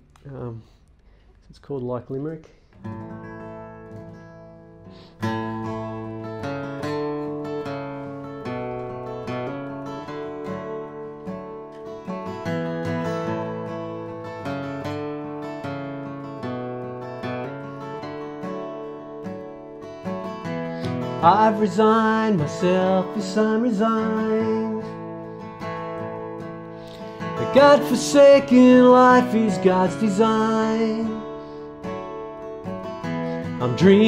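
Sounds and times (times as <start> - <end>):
acoustic guitar picking and strumming: 2.7 - 34.0.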